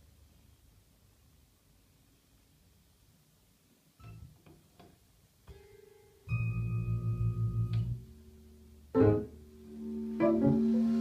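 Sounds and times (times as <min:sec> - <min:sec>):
electric piano playing: 0:05.6 - 0:11.0.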